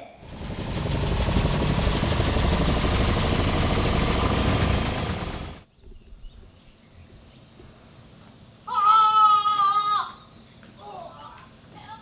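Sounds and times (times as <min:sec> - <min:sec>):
rough rattling mechanical noise: 0:00.2 - 0:05.7.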